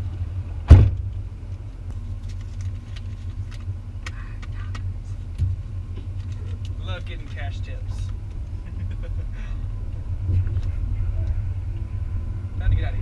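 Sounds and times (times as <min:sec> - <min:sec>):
truck idling hum: 0:00.0 - 0:13.0
truck door slammed shut: 0:00.6 - 0:01.1
soft thump: 0:00.7 - 0:01.1.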